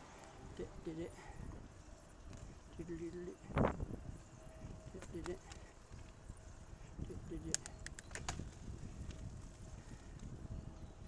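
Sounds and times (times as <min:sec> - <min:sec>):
road rumble: 0:00.0 - 0:11.0
wind on microphone: 0:00.4 - 0:11.0.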